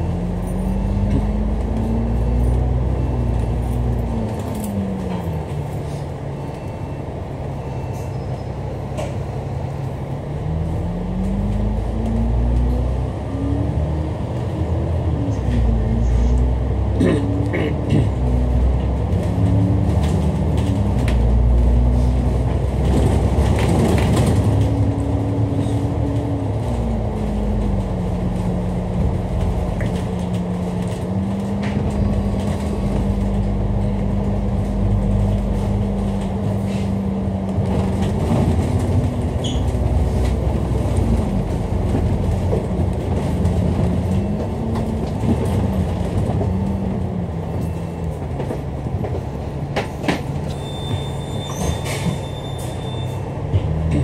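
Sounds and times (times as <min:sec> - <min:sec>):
bus engine rumble and whine: 0:00.0 - 0:54.0.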